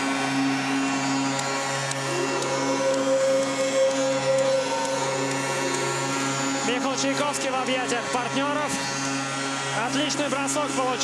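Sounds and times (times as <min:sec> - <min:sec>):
arena crowd noise: 0:00.0 - 0:07.4
goal horn low note: 0:00.0 - 0:08.3.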